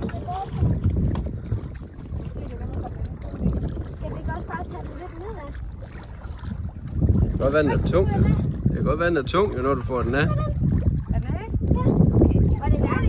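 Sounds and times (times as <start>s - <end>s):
water sloshing around fish trap: 0.0s - 13.0s
wind rumble on microphone: 0.0s - 13.0s.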